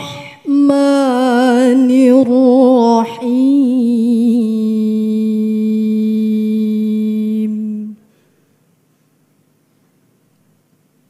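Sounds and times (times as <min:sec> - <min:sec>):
woman reciting melodically: 0:00.0 - 0:08.1.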